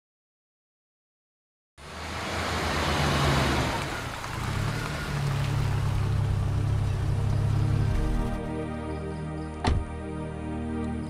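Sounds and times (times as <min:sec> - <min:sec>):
car engine running: 0:01.8 - 0:08.6.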